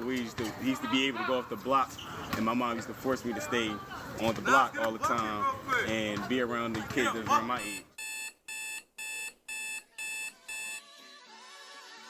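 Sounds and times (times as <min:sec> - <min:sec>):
alarm clock beeping: 0:07.6 - 0:10.8.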